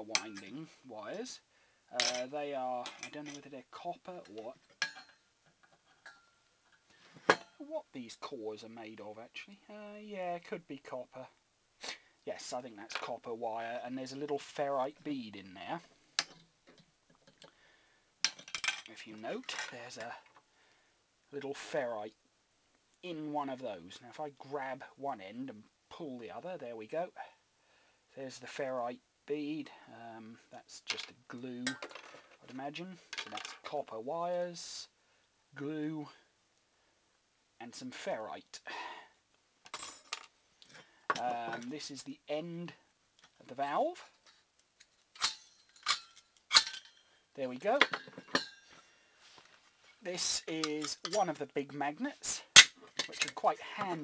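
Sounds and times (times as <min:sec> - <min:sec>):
metal parts clinking: 0:18.2 - 0:19.7, 0:39.7 - 0:40.3, 0:44.8 - 0:47.1, 0:47.8 - 0:48.8
metallic clicks and clinks: 0:44.2 - 0:47.1.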